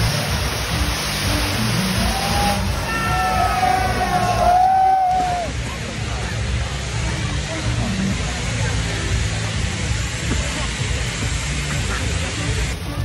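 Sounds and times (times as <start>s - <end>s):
spark fountains hissing: 0.0s - 5.6s, 6.8s - 13.0s
low music bass: 0.0s - 13.0s.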